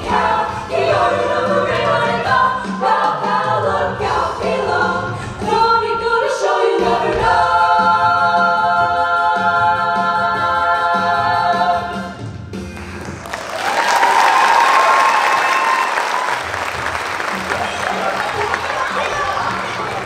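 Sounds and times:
audience applause and cheering: 12.8 - 20.0
long high cheer: 13.2 - 20.0.

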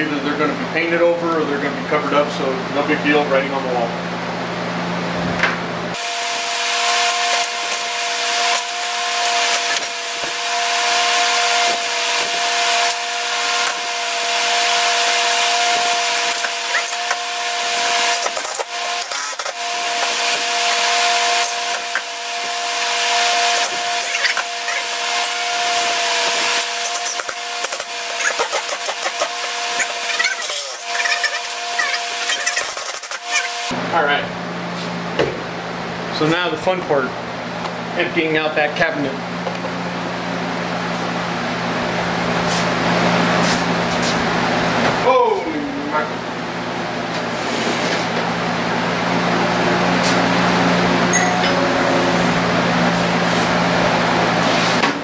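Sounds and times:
high-pitched drill whine: 6.0 - 33.8.

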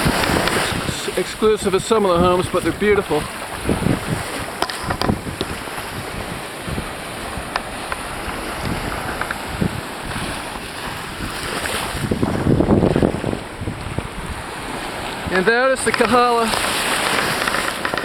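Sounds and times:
surf on a beach: 0.0 - 18.0
wind buffeting microphone: 0.0 - 18.0.

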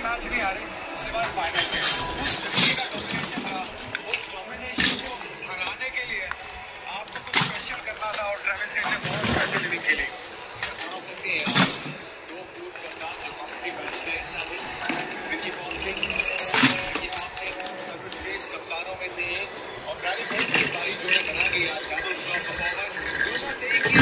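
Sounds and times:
plastic toys clattering: 0.1 - 24.0.

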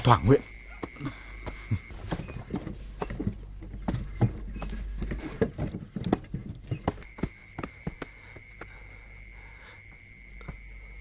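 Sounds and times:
horse hooves clip-clopping: 2.1 - 8.5.

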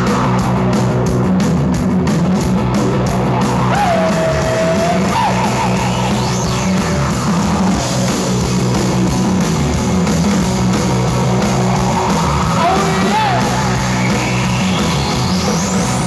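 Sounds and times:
live rock band playing: 0.0 - 16.0
sliding guitar lead notes: 0.0 - 16.0.

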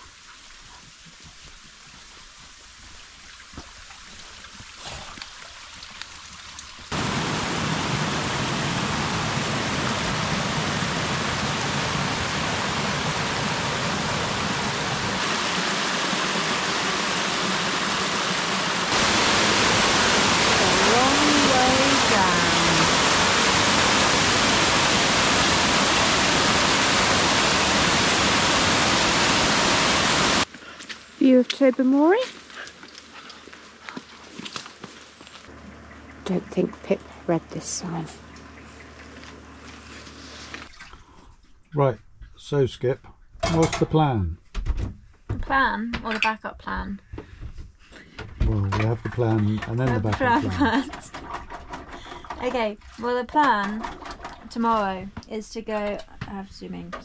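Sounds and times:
water cascading over rocks: 2.8 - 30.5.

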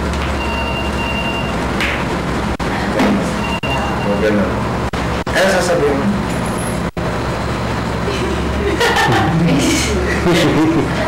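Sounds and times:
steady low hum: 0.0 - 11.0
man laughing: 8.1 - 11.0.

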